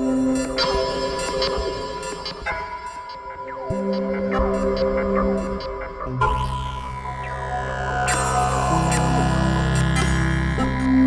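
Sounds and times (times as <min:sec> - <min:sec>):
low synthesizer drone: 0:03.7 - 0:11.0.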